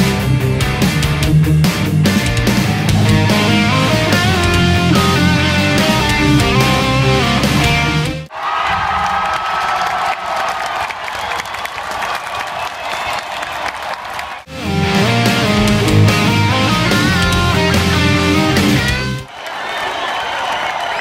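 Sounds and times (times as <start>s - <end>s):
heavy rock music: 0.0s - 8.3s, 14.5s - 19.3s
arena crowd cheering and applauding: 8.3s - 21.0s.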